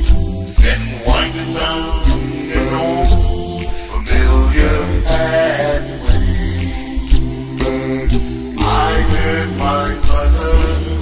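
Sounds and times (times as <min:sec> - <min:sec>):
unaccompanied gospel hymn singing: 0:00.0 - 0:11.0
deep bass voice: 0:00.6 - 0:11.0.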